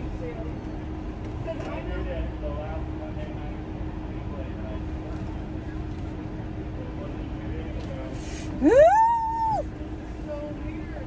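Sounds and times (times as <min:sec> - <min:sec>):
woman's high whoo: 0:08.6 - 0:09.7.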